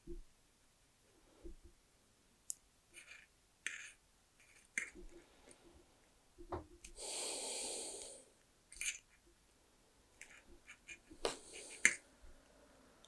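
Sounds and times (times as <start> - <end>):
person breathing out hard: 7.0 - 8.4.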